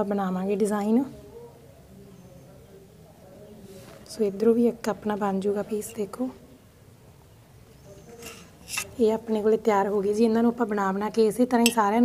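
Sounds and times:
knife scraping dough on board: 8.1s - 9.0s.

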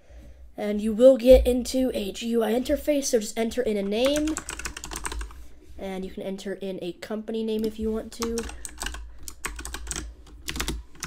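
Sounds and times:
typing on keyboard: 3.9s - 5.3s, 7.6s - 11.0s.

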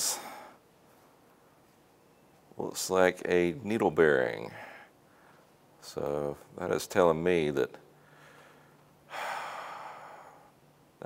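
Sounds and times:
man sighing: 8.2s - 10.5s.

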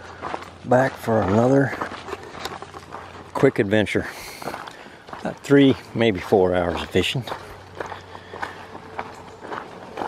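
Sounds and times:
footsteps on gravel: 0.0s - 10.0s.

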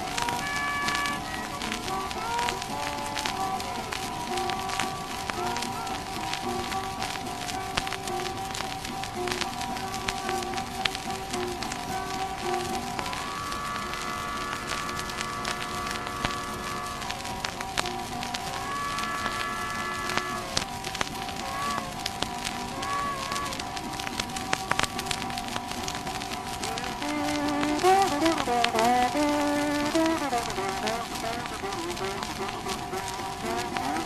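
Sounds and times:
harmonica chords: 0.0s - 23.9s, 26.8s - 34.0s
guitar: 0.0s - 34.0s
record surface crackle and hiss: 0.0s - 34.0s.

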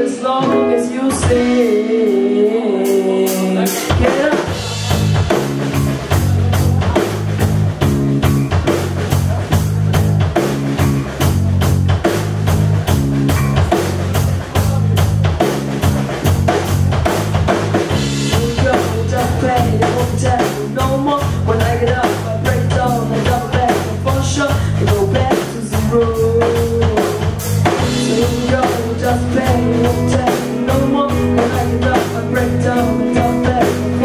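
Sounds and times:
drum kit fast beat: 0.0s - 34.0s
electric bass: 0.0s - 34.0s
electric guitars: 0.0s - 34.0s.

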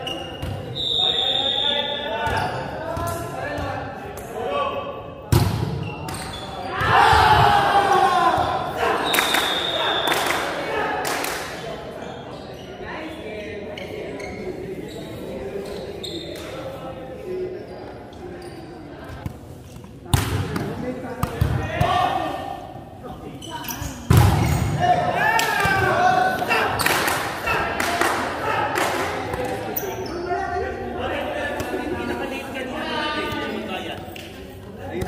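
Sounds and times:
players' voices and calls: 0.0s - 35.0s.

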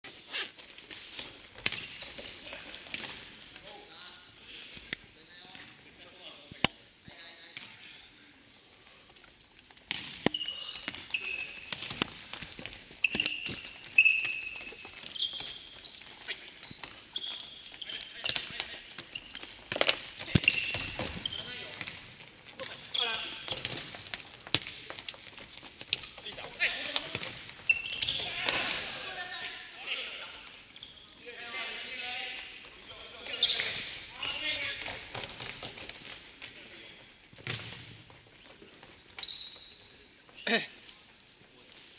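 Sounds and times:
sneakers squeaking on floor: 0.1s - 3.4s, 9.1s - 40.5s
ball kicked and bouncing on gym floor: 9.7s - 28.9s, 37.3s - 39.9s.

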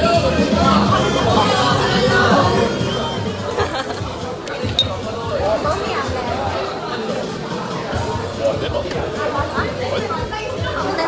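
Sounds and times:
sharp clink: 4.8s - 5.0s.

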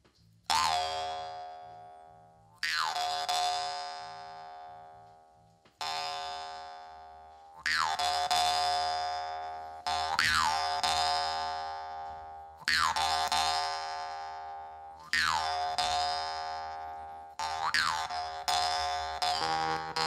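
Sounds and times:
jaw harp twanging: 15.1s - 20.0s
lower steady tone: 18.4s - 20.0s.

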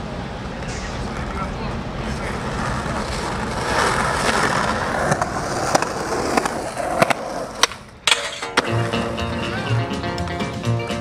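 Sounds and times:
skateboard wheels rolling on concrete: 0.0s - 11.0s
skateboard clacks: 2.2s - 10.2s.

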